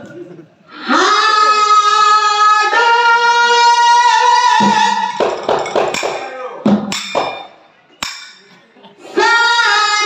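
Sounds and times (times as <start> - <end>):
drum strokes: 4.6 - 8.5.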